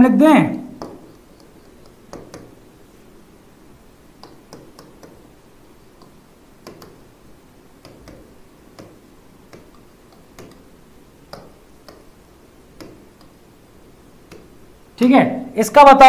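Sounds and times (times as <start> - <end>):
stylus tapping on a screen: 0.7 - 2.6, 4.2 - 7.1, 7.8 - 13.4, 14.2 - 14.6.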